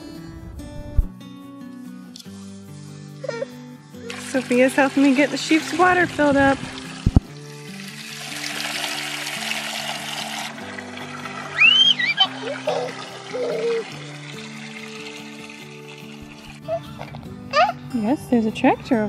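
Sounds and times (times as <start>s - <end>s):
soft background music: 0.0s - 19.0s
hose water splashing into tank: 4.1s - 16.6s.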